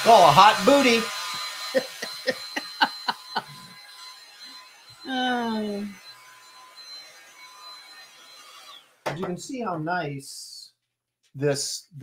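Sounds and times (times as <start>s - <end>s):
person laughing: 1.6s - 3.8s.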